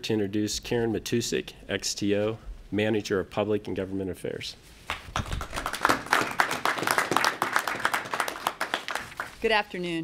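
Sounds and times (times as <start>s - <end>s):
people clapping: 4.9s - 9.4s.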